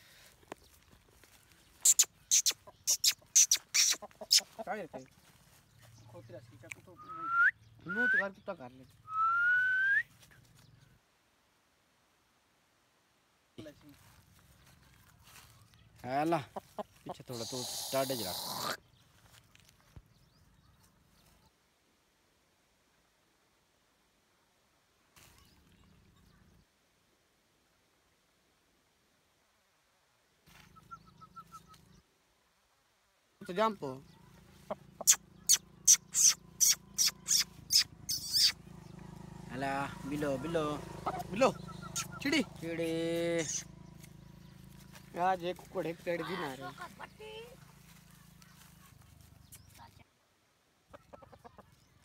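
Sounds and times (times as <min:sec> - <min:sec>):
small bird chirping: 0:00.6 - 0:09.2, 0:14.4 - 0:21.6, 0:30.5 - 0:32.1, 0:33.4 - 0:50.1, 0:50.9 - 0:52.0
person whistling: 0:07.0 - 0:08.2, 0:09.1 - 0:10.1.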